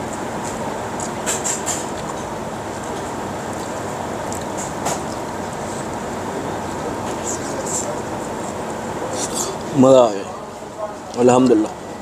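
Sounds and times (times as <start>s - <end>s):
urban background noise: 0.0s - 12.0s.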